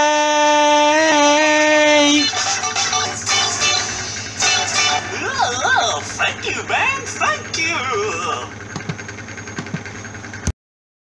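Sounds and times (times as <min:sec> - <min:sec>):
voice trailing off: 0:00.0 - 0:08.6
low hum: 0:00.0 - 0:10.4.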